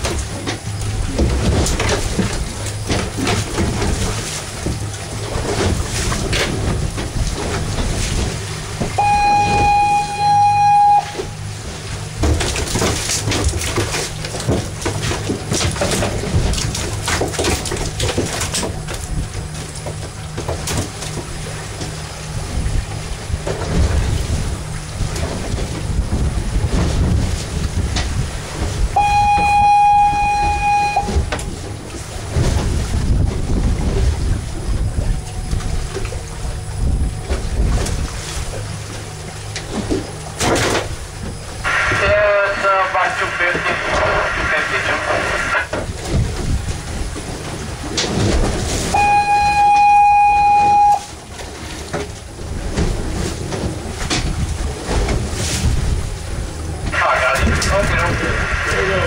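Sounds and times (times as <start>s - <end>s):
low steady hum: 0.0s - 59.0s
water noise: 0.0s - 59.0s
wind: 0.0s - 59.0s
fog horn blast: 9.0s - 11.6s, 29.0s - 31.3s, 41.6s - 45.7s, 48.9s - 51.1s.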